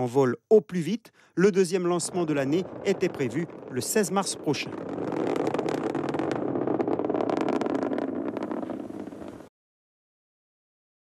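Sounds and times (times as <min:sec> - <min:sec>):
rocket engine roar with crackle: 0:01.8 - 0:09.5.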